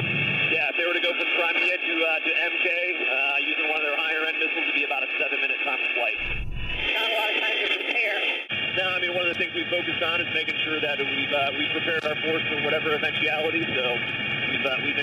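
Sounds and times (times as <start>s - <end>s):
helicopter cabin noise: 0.0s - 15.0s
low rumble: 6.2s - 7.0s.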